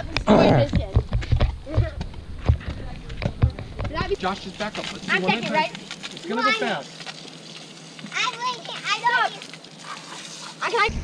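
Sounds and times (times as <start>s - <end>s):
water spraying from hose: 3.9s - 11.0s.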